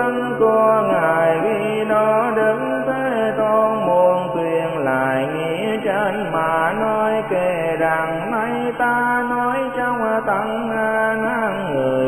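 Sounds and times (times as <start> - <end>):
slow melodic chant singing: 0.0 - 12.0.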